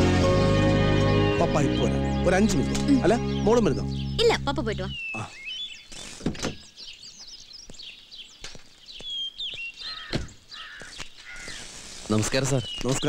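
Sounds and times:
birds chirping and whistling: 0.0 - 13.0
harsh caws: 9.8 - 11.8.

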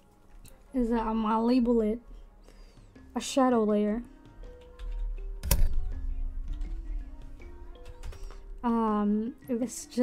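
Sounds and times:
background music with held notes: 0.0 - 10.0
computer keyboard typing: 4.5 - 5.9, 7.7 - 8.5.

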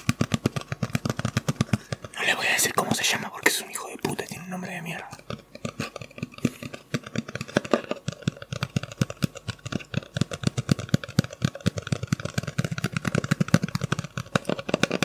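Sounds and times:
fingers tapping on hard object: 0.0 - 15.0.

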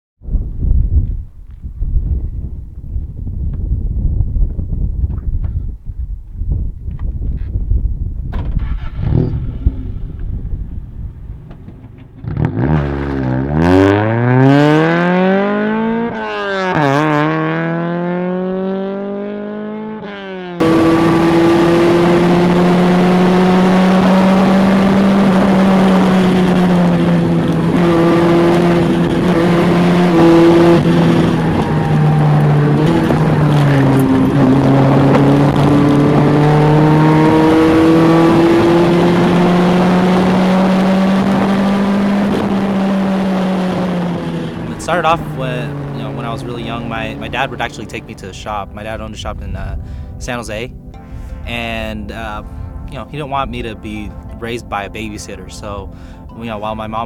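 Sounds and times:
car engine revving through gears: 8.4 - 10.4, 12.2 - 48.3
car engine heard from inside cabin: 20.6 - 48.1.

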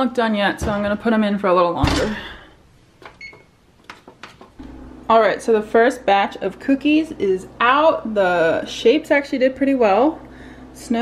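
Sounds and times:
steady low hum: 4.5 - 11.0.

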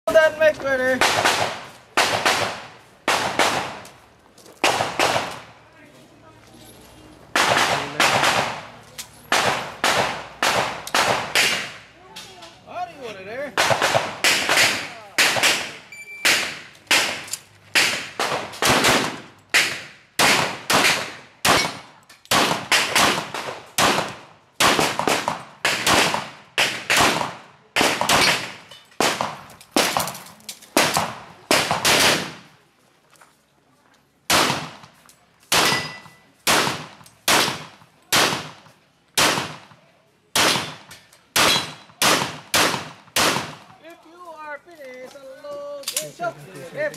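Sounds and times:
pistol shots: 1.0 - 3.8, 4.6 - 5.5, 7.4 - 8.7, 9.3 - 11.8, 13.6 - 30.2, 30.8 - 32.4, 34.3 - 34.8, 35.5 - 38.6, 39.2 - 43.7.

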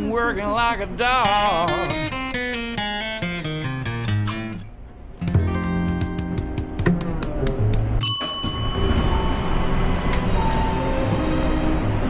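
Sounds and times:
elevator car rumbling: 7.6 - 12.0
high ringing tone: 8.0 - 11.8.

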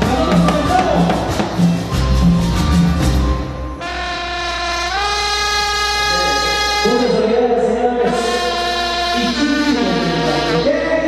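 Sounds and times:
trumpets holding a chord: 3.7 - 11.0.

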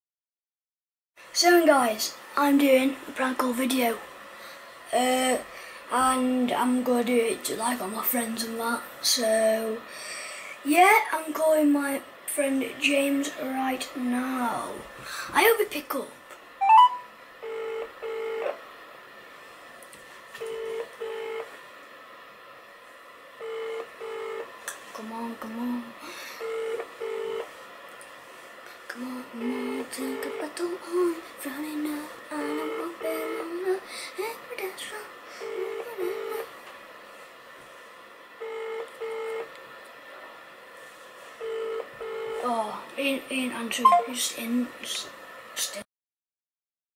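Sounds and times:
rising run of beeps: 16.6 - 17.1, 43.8 - 44.1
phone ringback tone: 16.6 - 18.5, 20.4 - 21.5, 23.4 - 24.5, 26.4 - 27.5, 29.4 - 30.5, 32.5 - 33.5, 35.4 - 36.4, 38.4 - 39.5, 41.4 - 42.4, 43.8 - 44.1.

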